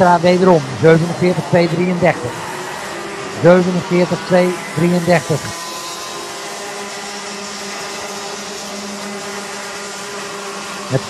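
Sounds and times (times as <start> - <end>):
kart engines droning: 0.0 - 11.0.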